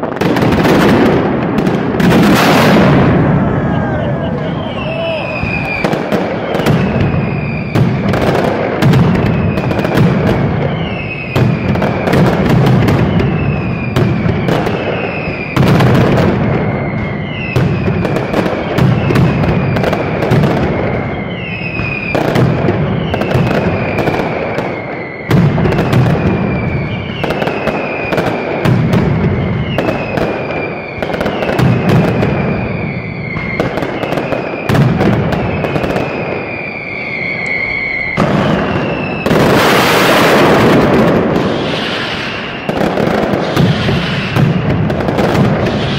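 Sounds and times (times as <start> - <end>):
firecrackers banging: 0.0 - 45.9
short falling whistles: 3.4 - 7.8, 35.5 - 39.3, 41.6 - 44.6.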